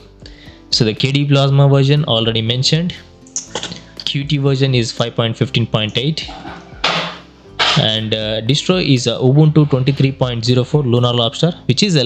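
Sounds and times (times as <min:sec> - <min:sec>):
man narrating: 0:00.7 - 0:03.1, 0:04.0 - 0:06.4, 0:07.8 - 0:12.0.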